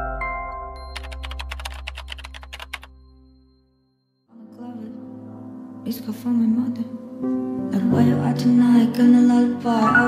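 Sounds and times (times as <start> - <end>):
keyboard key clicks: 1.0 - 2.9.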